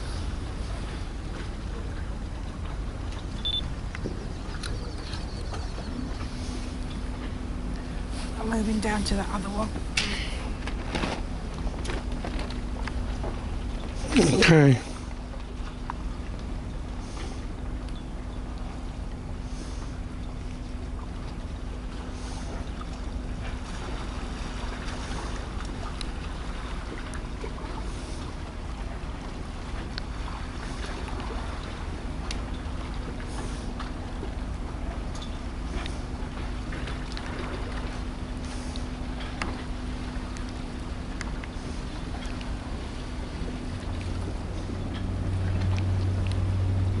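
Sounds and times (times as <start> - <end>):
low hum: 0.0 - 47.0
low rumble: 0.0 - 47.0.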